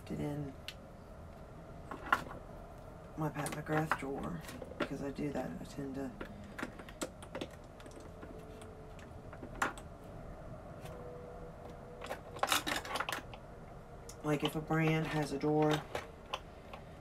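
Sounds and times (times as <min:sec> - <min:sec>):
makeup products clicking and clattering: 0:06.2 - 0:08.4, 0:12.0 - 0:13.4, 0:14.4 - 0:16.8.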